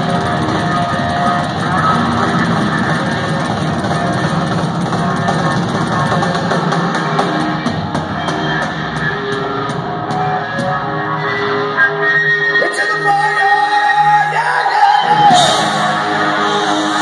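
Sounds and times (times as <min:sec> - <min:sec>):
hard rock band playing: 0:00.0 - 0:17.0.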